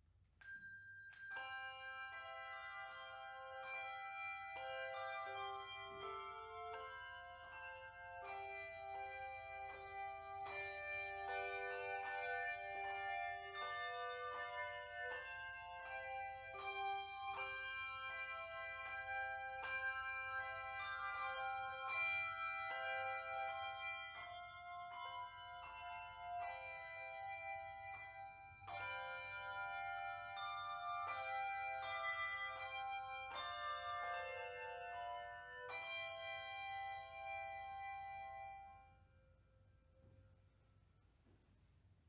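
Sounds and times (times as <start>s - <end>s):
handbell choir playing melody: 0.4s - 41.0s.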